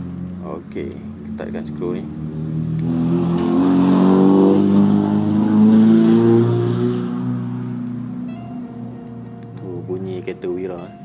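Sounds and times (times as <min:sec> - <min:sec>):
passing vehicle engine: 0:00.0 - 0:11.0.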